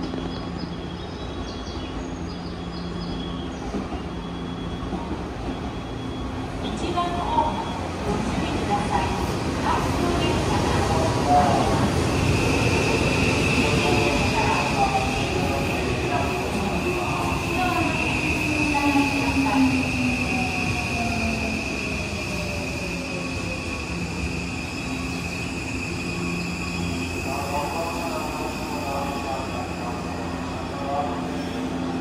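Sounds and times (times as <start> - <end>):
rumble of train cars: 0.0 - 32.0.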